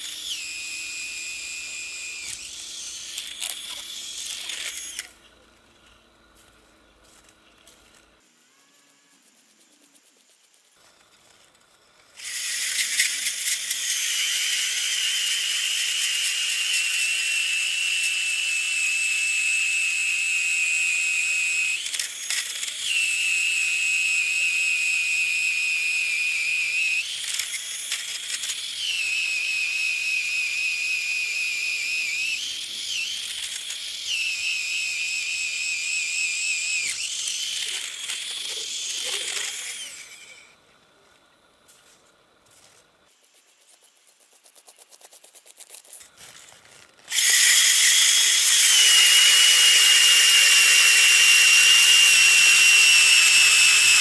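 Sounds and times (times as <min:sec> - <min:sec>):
cordless drill motor whine: 0:00.0 - 0:06.3, 0:12.2 - 0:40.6, 0:46.4 - 0:54.0.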